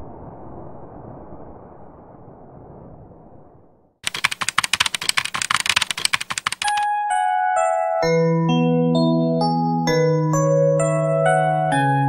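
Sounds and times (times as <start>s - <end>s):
keyboard typing: 4.0s - 6.8s.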